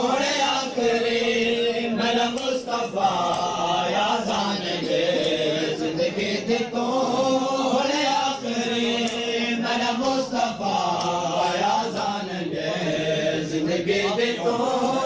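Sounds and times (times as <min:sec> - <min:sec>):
men chanting a lament: 0:00.0 - 0:15.0.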